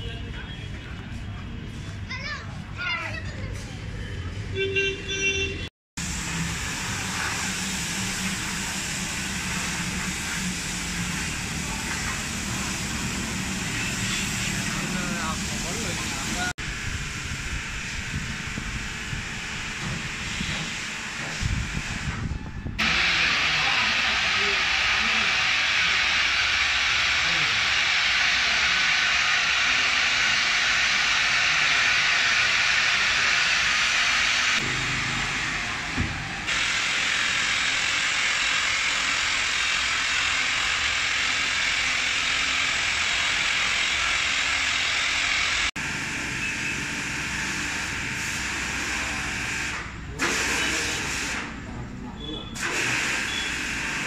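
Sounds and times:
electric rotary polisher hissing: 6.0s - 22.2s, 22.8s - 51.6s, 52.6s - 54.0s.

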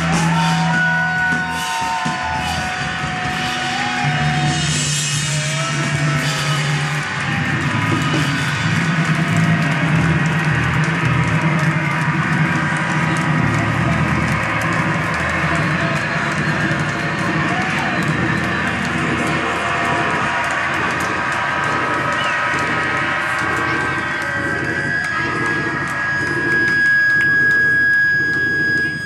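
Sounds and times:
drum kit: 0.0s - 27.5s.

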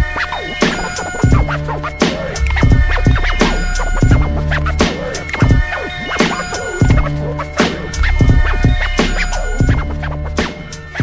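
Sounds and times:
hip hop beat: 0.0s - 11.0s
turntable scratching: 0.0s - 11.0s.

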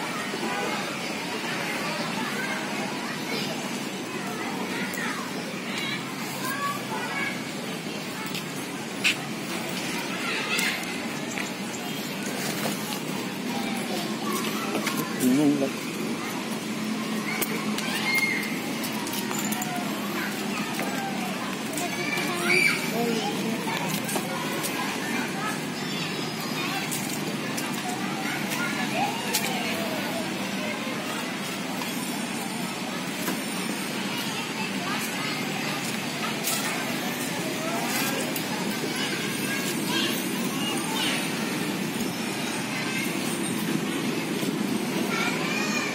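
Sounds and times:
outdoor background noise with hum: 0.0s - 45.9s
people chattering: 0.0s - 45.9s.

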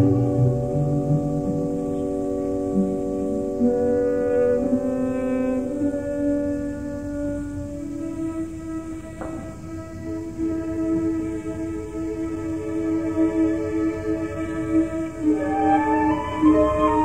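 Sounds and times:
orchestra playing sustained chords: 0.0s - 17.0s.

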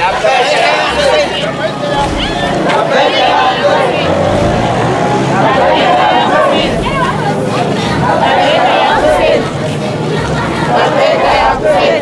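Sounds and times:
crowd voices: 0.0s - 12.0s
low steady rumble: 0.7s - 12.0s.

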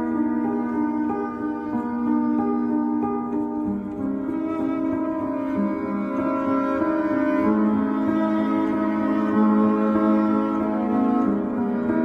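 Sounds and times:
instrumental music with held notes: 0.0s - 12.0s.

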